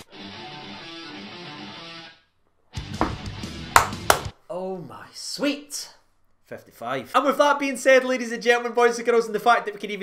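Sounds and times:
guitar music: 0.0s - 4.1s.

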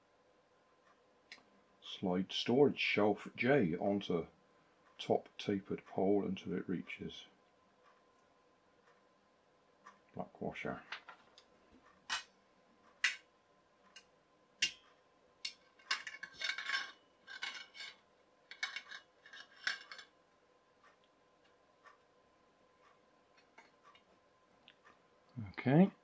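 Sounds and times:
wire shelf clinking and scraping: 15.5s - 20.1s.

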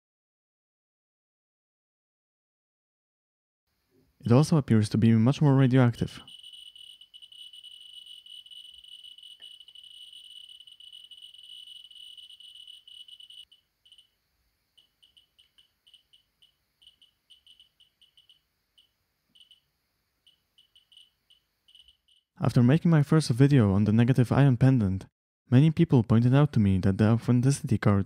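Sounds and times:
radiation meter chirping clicks: 6.2s - 14.1s, 14.8s - 19.6s, 20.3s - 22.2s.

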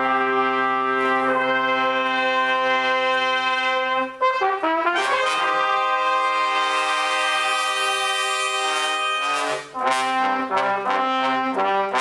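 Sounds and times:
trumpet ensemble holding a chord: 0.0s - 12.0s.

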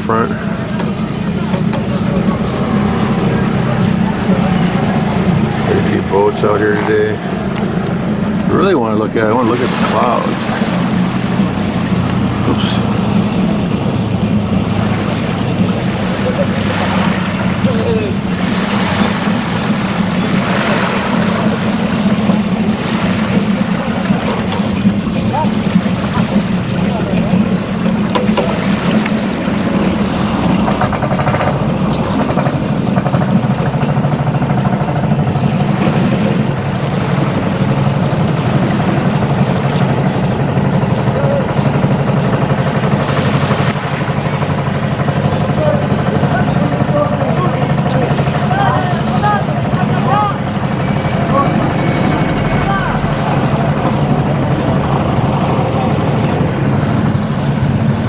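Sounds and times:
boat engine running: 0.0s - 58.0s.

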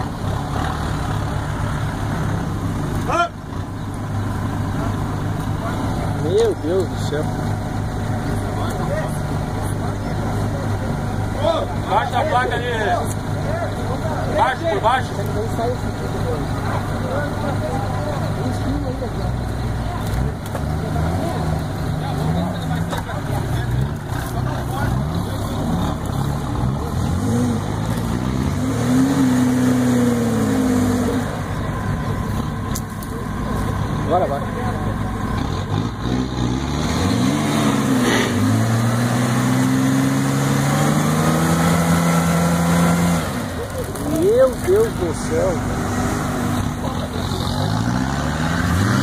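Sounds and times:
engines revving under load: 0.0s - 49.0s.

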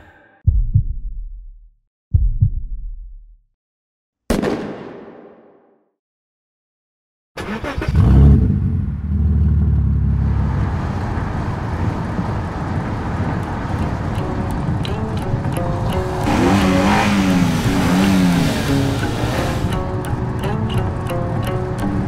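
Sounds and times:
car engine revving: 7.6s - 21.7s
music with held notes: 13.8s - 22.0s.

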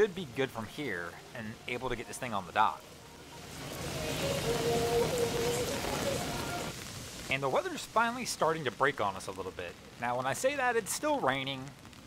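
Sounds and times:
heavy rain on water: 0.0s - 12.0s.

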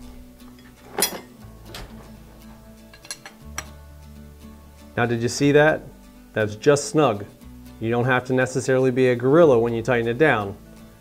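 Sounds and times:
soft background music: 0.0s - 11.0s
wrench clinking on metal: 0.5s - 3.8s.

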